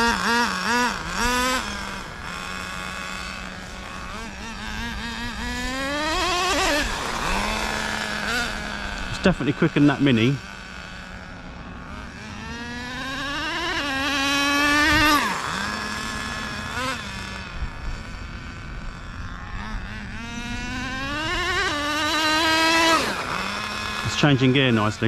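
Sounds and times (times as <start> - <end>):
rc car nitro engine revving: 0.0 - 25.0.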